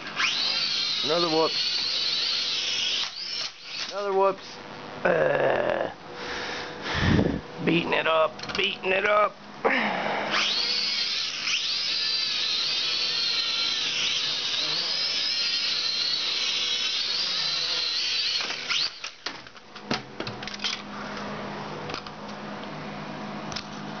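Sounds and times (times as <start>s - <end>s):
toy drone motors whining: 0.0s - 4.2s, 10.3s - 19.4s.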